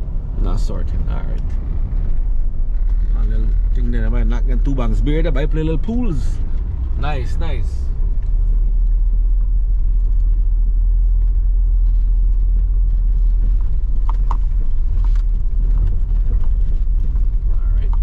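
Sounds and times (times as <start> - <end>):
car driving on dirt road: 0.0 - 18.0.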